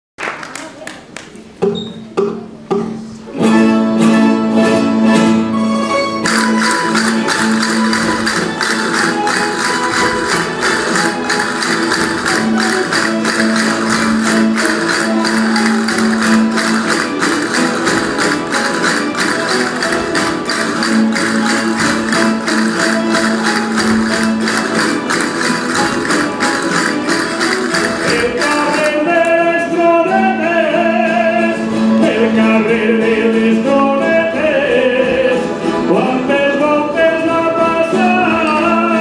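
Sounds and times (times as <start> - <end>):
guitars and lutes strumming: 2.2 - 39.0
sharp clicks marking beat: 6.3 - 29.0.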